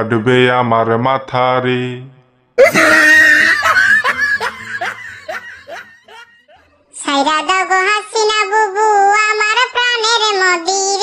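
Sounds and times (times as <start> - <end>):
person laughing: 2.6 - 6.7.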